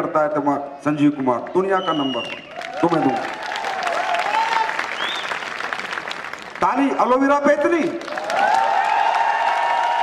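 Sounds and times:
large audience applauding: 2.1 - 10.0.

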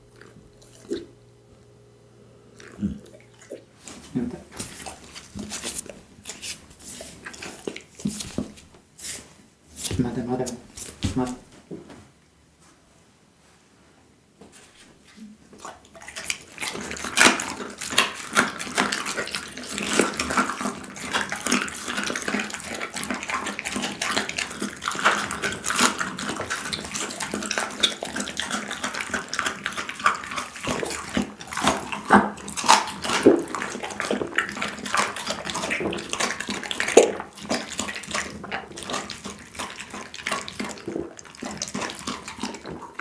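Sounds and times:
dog chewing and crunching bone: 0.0 - 1.7, 2.5 - 8.7, 15.0 - 43.0.

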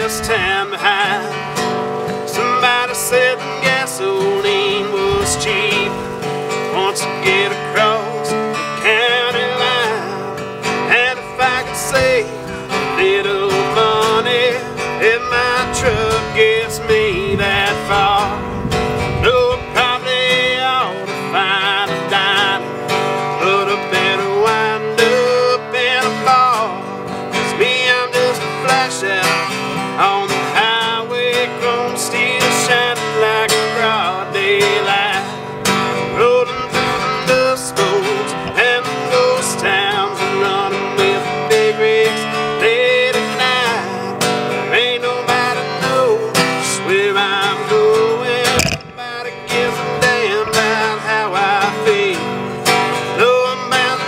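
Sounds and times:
acoustic guitar strumming chords: 0.0 - 54.0.

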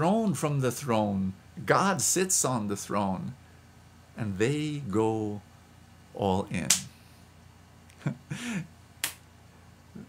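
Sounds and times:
man chuckling: 7.9 - 8.8.

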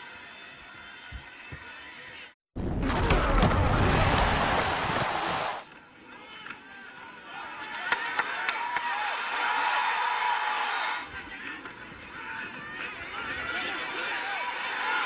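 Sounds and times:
stadium crowd noise with voices: 3.1 - 15.0.

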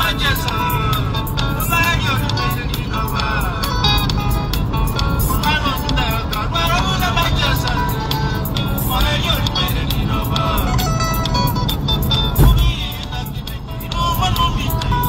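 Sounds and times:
instrumental backing: 10.8 - 13.4.

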